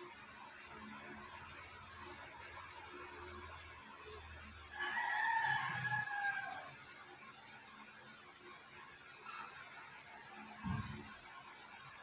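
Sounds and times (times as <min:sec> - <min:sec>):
rooster crowing: 0:04.7 - 0:06.8.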